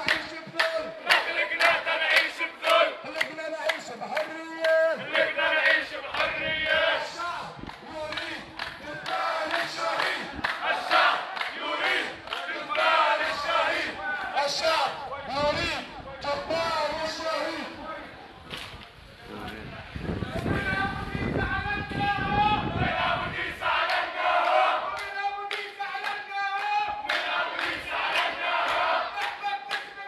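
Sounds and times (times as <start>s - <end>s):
crowd chanting slogans: 0.0s - 18.4s, 20.1s - 30.0s.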